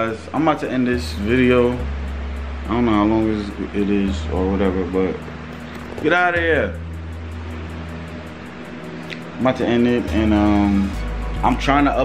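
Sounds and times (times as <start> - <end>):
low hum with faint hiss: 0.0 - 12.0.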